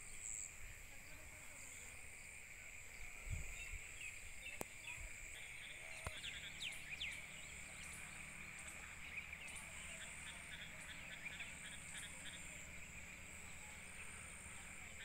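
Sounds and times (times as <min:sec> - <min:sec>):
insects chorus: 0:00.0 - 0:15.0
bird chirps: 0:03.5 - 0:15.0.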